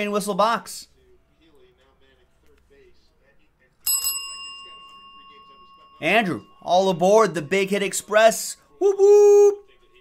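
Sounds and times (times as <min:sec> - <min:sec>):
small bell ringing: 0:03.8 - 0:07.6.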